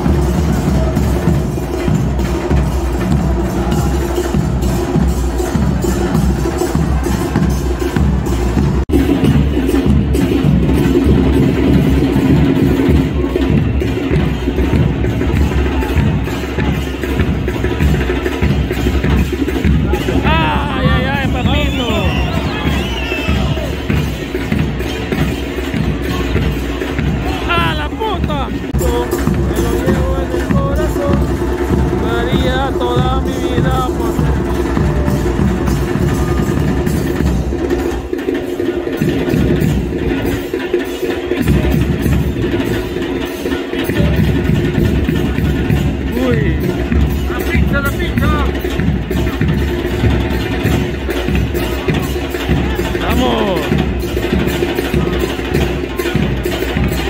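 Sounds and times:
crowd chanting: 0:00.0 - 0:09.1, 0:11.6 - 0:38.4
drums beating fast rhythm: 0:00.0 - 0:57.0.

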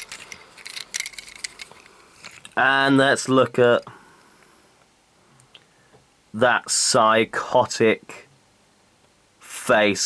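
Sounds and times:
plastic toy clicks and rattles: 0:00.0 - 0:02.6.

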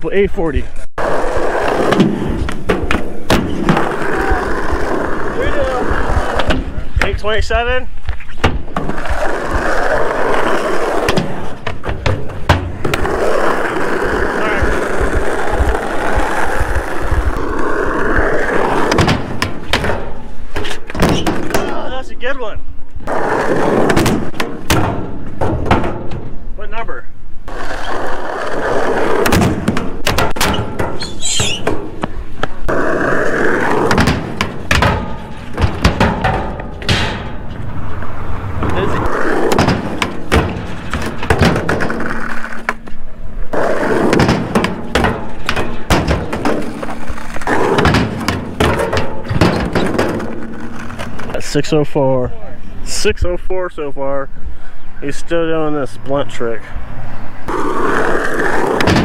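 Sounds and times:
skateboard rolling: 0:01.0 - 0:07.2, 0:08.0 - 0:21.9, 0:23.0 - 0:26.5, 0:27.4 - 0:51.8, 0:56.8 - 0:59.0
skateboard clacks and thuds: 0:01.6 - 0:05.2, 0:08.4 - 0:17.5, 0:18.6 - 0:21.8, 0:23.1 - 0:26.3, 0:28.4 - 0:51.3, 0:57.5 - 0:59.0.

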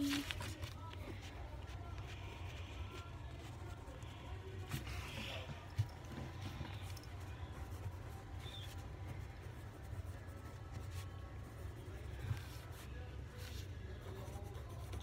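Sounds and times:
pencil scratching on paper: 0:06.8 - 0:15.0.

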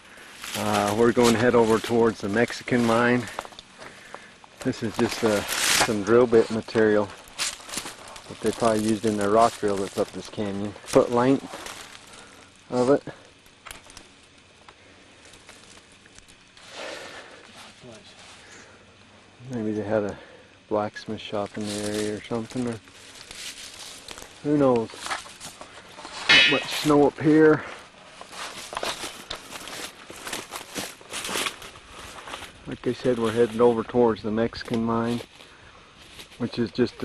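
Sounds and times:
rustle of dry brush and leaves: 0:00.0 - 0:37.0
faint handling noise: 0:00.4 - 0:16.7, 0:21.3 - 0:36.9.

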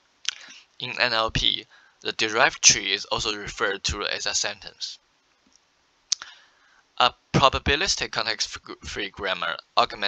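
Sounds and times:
person speaking: 0:00.3 - 0:05.0, 0:07.0 - 0:10.0.

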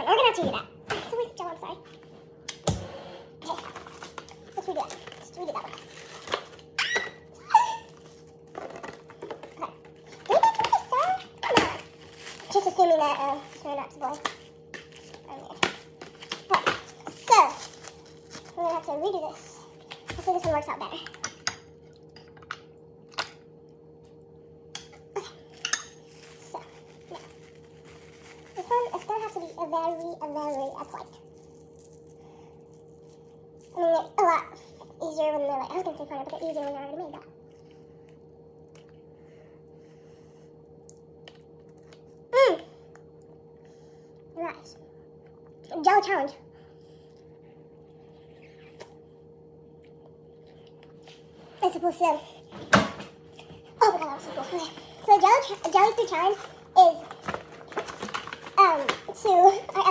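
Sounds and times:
steady low hum: 0:00.0 - 0:59.9
plastic bag crinkling: 0:03.4 - 0:19.1, 0:25.5 - 0:33.8, 0:53.8 - 0:59.9.

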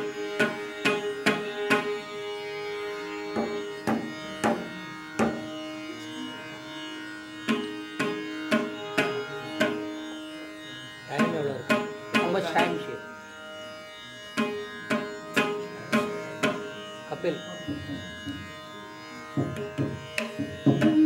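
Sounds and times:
mridangam strokes: 0:00.0 - 0:13.1, 0:14.0 - 0:21.0
steady drone: 0:00.0 - 0:21.0
person singing: 0:20.7 - 0:21.0.

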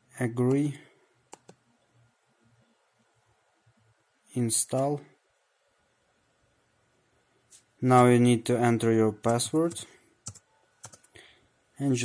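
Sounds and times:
faint mouse clicks: 0:01.3 - 0:01.6.

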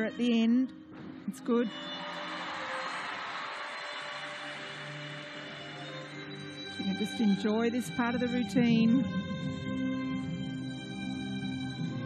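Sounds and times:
soft sustained music: 0:00.0 - 0:12.0
crowd applauding: 0:01.7 - 0:07.2.

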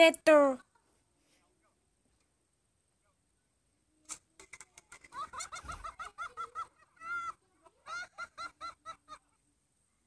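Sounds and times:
high-pitched cackling laughter: 0:04.5 - 0:09.4.

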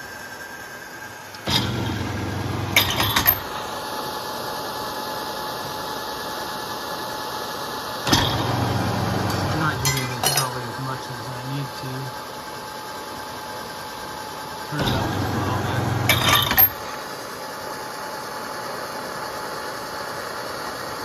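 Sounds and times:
motor humming: 0:01.2 - 0:03.8, 0:08.1 - 0:13.1, 0:13.7 - 0:17.3
metallic clinks: 0:09.8 - 0:10.6.

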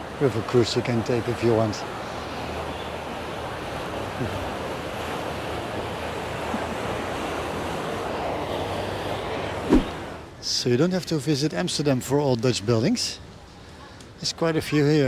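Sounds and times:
water flowing along canal: 0:00.0 - 0:15.0.

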